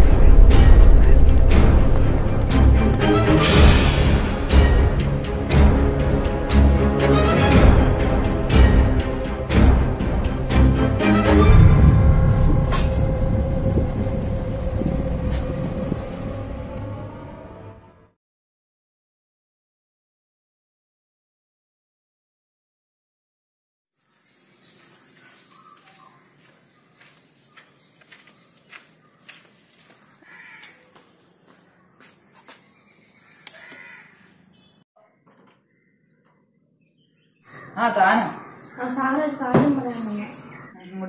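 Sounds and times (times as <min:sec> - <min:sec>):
low rumbling drone: 0:00.0 - 0:18.1
bird harsh call: 0:08.3 - 0:09.7, 0:30.0 - 0:31.0, 0:32.4 - 0:36.2
footsteps on tiled floor: 0:24.2 - 0:33.0.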